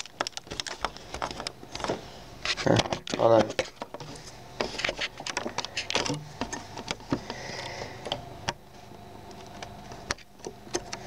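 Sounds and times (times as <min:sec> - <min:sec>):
plastic pieces clicking: 0:00.0 - 0:01.9.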